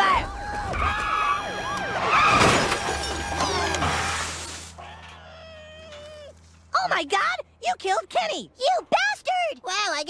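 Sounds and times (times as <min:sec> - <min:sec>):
long wail: 0:00.0 - 0:03.9, 0:04.8 - 0:06.4.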